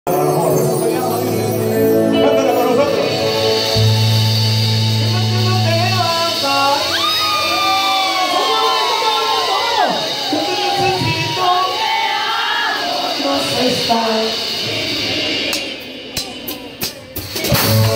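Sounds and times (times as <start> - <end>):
man singing: 0.0 - 4.3, 13.2 - 14.5
synthesizer keyboards: 0.1 - 6.9
electric bass: 0.1 - 7.8, 17.4 - 17.9
crowd shouting and whooping: 6.8 - 13.9.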